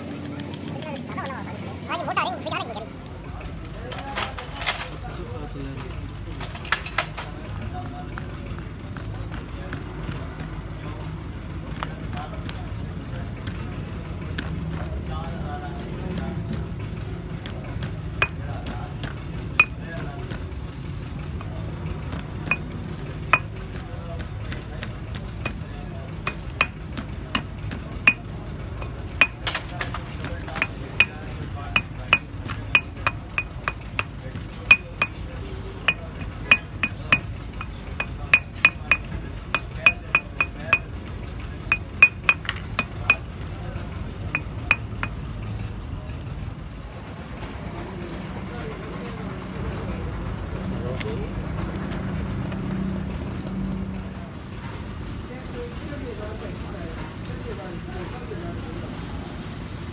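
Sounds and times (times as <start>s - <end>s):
hammer tapping on metal: 0.0s - 1.4s, 17.4s - 20.5s, 21.3s - 43.6s, 44.3s - 45.3s.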